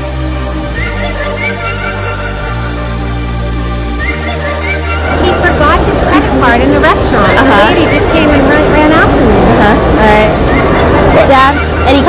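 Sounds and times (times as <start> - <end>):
steady low rumble: 0.2 - 12.0
crowd chatter: 0.7 - 12.0.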